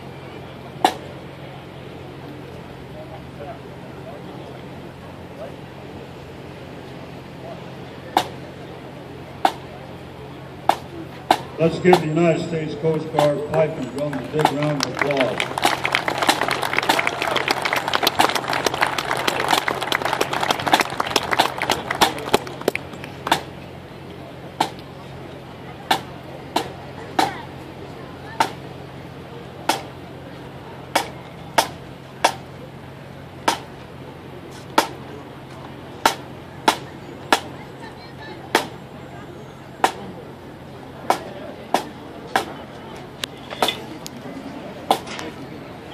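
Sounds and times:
marching drum strokes: 0.7s - 1.2s, 8.1s - 25.2s, 25.8s - 27.6s, 28.4s - 30.2s, 30.8s - 37.6s, 38.4s - 39.0s, 39.8s - 45.4s
crowd applauding: 12.7s - 23.4s.

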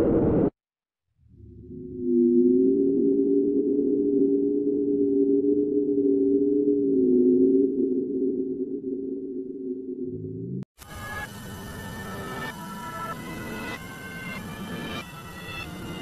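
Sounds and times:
eerie low synthesized drone: 1.3s - 16.0s.

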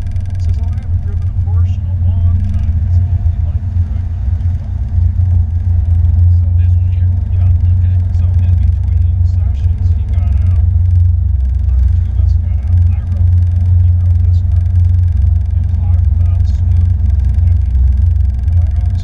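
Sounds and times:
car engine droning: 0.0s - 19.0s.

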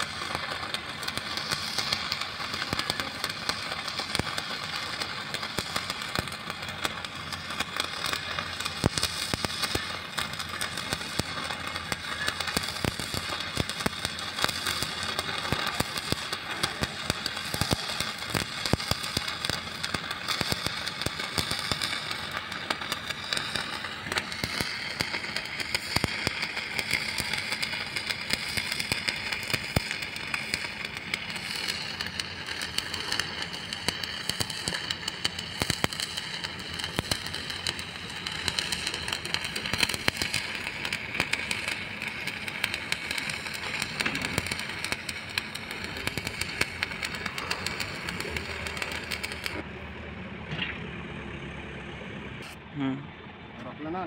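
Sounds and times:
arc welding crackling: 0.0s - 49.6s, 52.4s - 52.6s.

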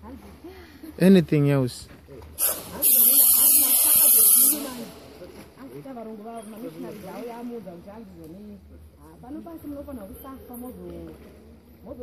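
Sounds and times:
loud hiss of escaping air: 2.4s - 4.9s.

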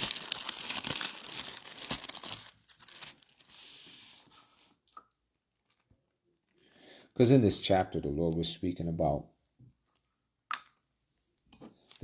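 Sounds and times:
thin paper rustling: 0.0s - 4.2s.

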